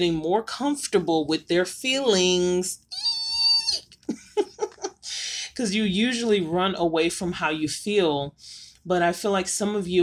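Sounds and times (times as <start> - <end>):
woman squealing: 2.9 - 4.0
woman giggling: 3.7 - 5.3.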